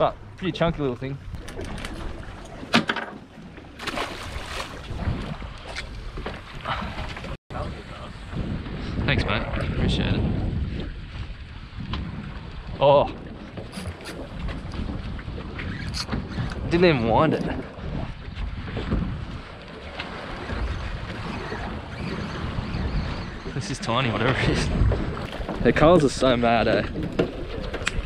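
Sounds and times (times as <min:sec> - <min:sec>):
wind buffeting microphone: 0:00.0 - 0:02.8, 0:03.7 - 0:28.0
sea washing around boat: 0:00.0 - 0:28.0.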